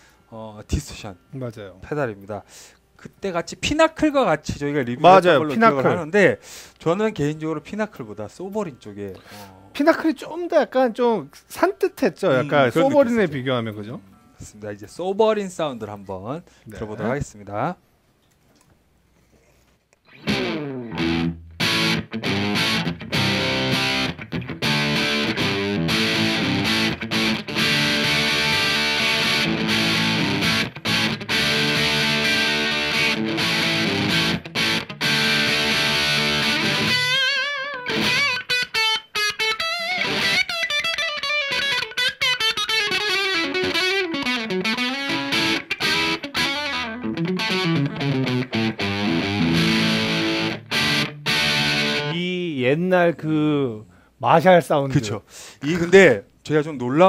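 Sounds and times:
guitar lead with bends: 0:20.0 - 0:52.2
distorted electric guitar: 0:20.1 - 0:52.2
distorted riffing chords: 0:20.1 - 0:52.2.

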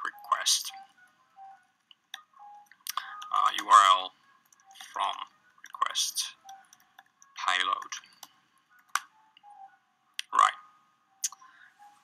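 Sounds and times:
faint steady tones: 0:00.0 - 0:12.0.

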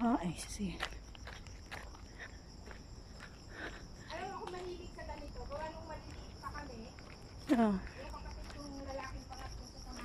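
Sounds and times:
footsteps on trail: 0:00.0 - 0:10.0
high insect drone: 0:00.0 - 0:10.0.

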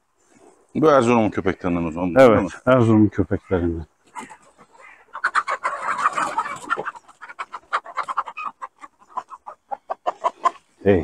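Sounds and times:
chickens clucking and squawking: 0:00.0 - 0:11.0.

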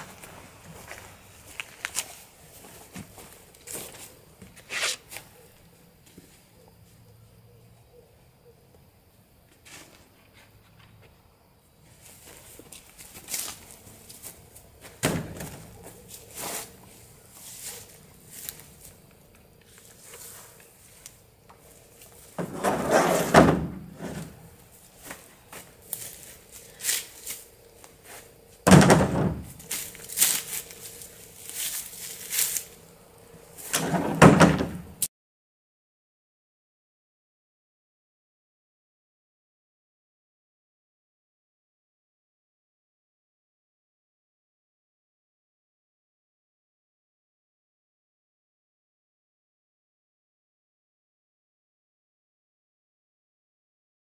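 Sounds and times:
wood pieces thunking into truck bed: 0:14.9 - 0:15.8, 0:22.4 - 0:24.4, 0:28.7 - 0:29.6, 0:33.7 - 0:35.0.

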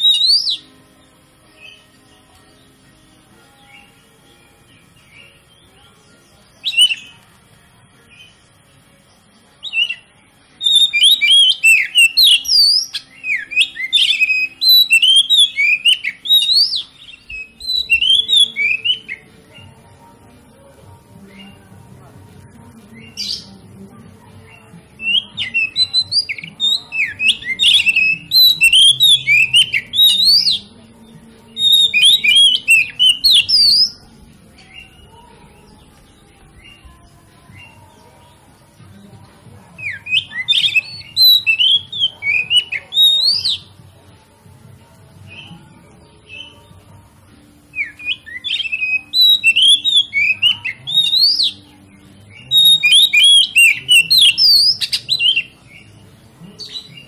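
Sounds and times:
bird singing whistles and chatter: 0:00.0 - 0:07.4, 0:09.6 - 0:19.8, 0:21.2 - 0:21.7, 0:22.8 - 0:23.7, 0:24.4 - 0:38.8, 0:39.8 - 0:43.9, 0:45.1 - 0:46.9, 0:47.6 - 0:57.0.

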